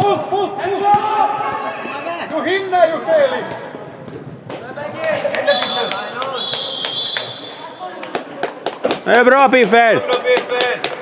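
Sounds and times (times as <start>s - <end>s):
shouting voices in a large hall: 0.0s - 3.9s, 4.5s - 11.0s
referee's whistle blast: 5.5s - 7.8s.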